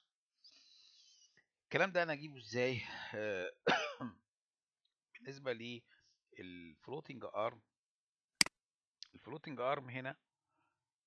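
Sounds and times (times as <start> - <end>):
man clearing his throat: 3.6 - 4.2.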